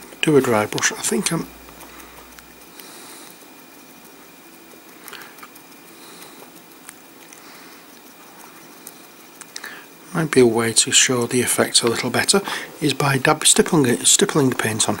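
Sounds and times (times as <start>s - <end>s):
paintbrush stippling ticks: 0.0s - 15.0s.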